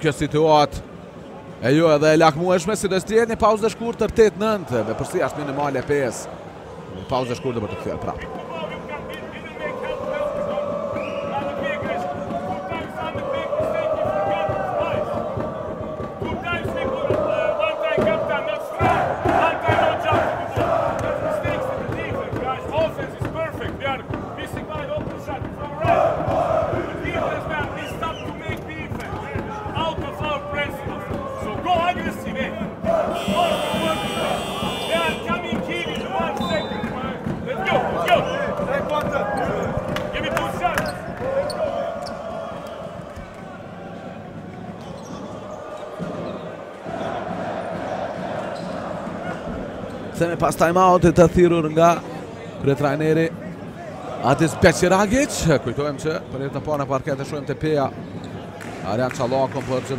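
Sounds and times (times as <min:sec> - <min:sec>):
voices: 0:01.6 - 0:58.0
crowd chanting: 0:03.5 - 0:51.2, 0:53.4 - 0:56.3
music: 0:08.0 - 0:57.0.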